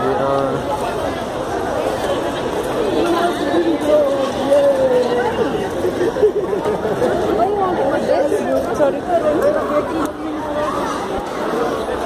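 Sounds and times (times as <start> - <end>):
crowd murmur: 0.0 - 12.0
people chattering: 0.0 - 12.0.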